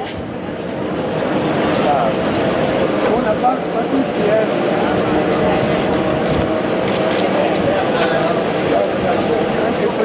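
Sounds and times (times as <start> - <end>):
car engines idling: 0.2 - 10.0
people talking: 1.7 - 2.3, 3.0 - 6.3, 7.1 - 10.0.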